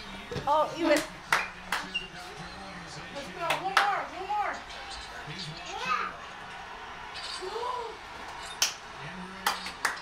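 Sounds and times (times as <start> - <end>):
sharp hand claps: 1.0 - 1.9, 8.6 - 10.0.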